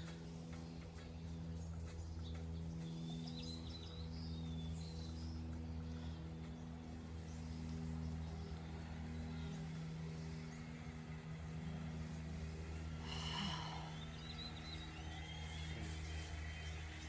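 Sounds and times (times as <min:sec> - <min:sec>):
steady low hum: 0:00.0 - 0:17.0
person breathing out: 0:13.0 - 0:14.1.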